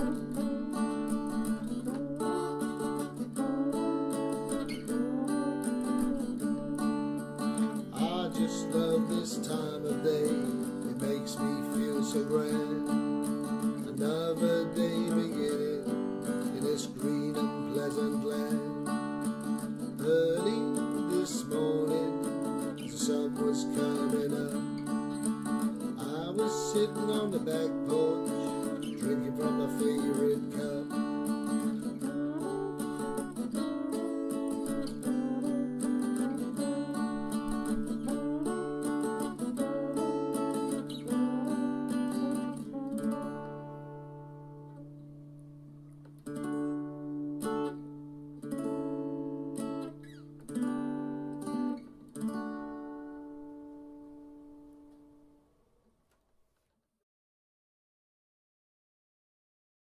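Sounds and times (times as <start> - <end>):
acoustic guitar strumming chords: 0.0 - 55.5.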